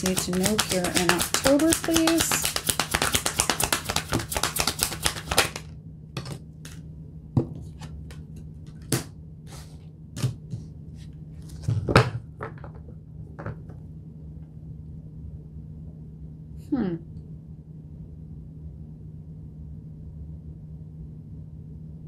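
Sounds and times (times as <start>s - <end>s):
card clicks and taps: 0.0s - 5.6s
cards being riffle-shuffled: 0.0s - 5.7s.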